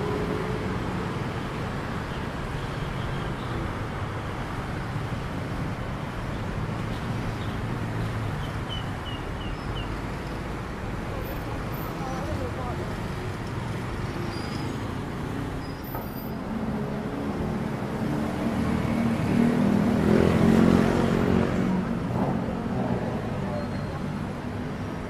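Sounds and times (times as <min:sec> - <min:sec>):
city street traffic: 0:00.0 - 0:25.0.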